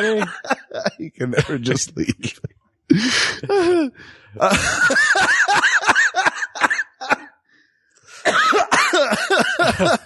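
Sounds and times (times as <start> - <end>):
men laughing hard: 0.0 - 7.4, 8.3 - 10.0.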